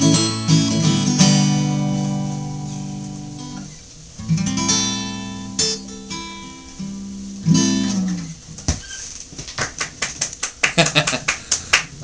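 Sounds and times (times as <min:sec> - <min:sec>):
acoustic guitar chord: 0:00.0 - 0:08.4
man laughing: 0:10.7 - 0:11.5.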